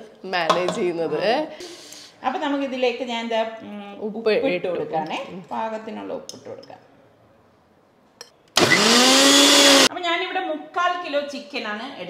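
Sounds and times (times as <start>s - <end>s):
mixer grinder motor whine: 8.6s - 9.9s.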